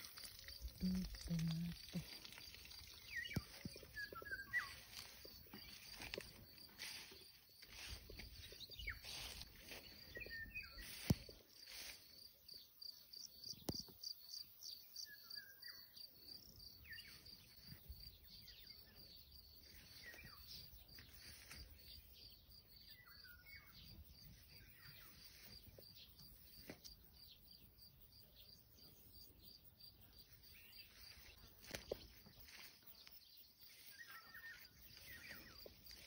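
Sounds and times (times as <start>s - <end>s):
crickets chirping: 0.0s - 36.0s.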